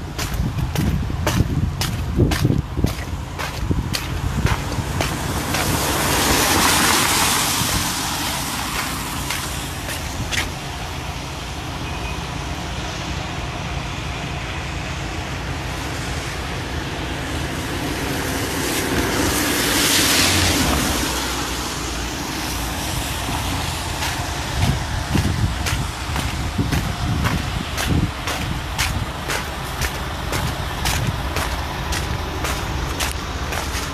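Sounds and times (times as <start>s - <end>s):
traffic rumble: 0.0s - 33.9s
vehicle tyre hiss on wet road: 0.0s - 33.9s.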